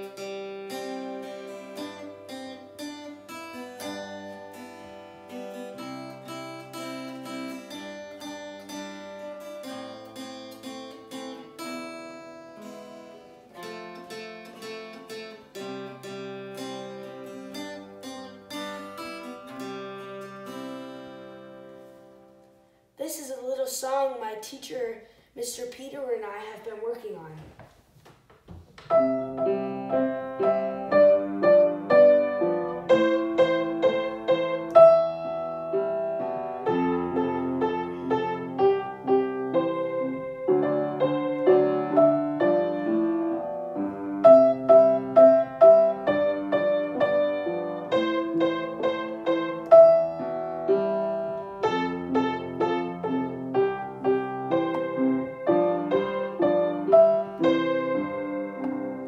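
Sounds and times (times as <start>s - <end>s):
piano duet: 28.8s - 59.0s.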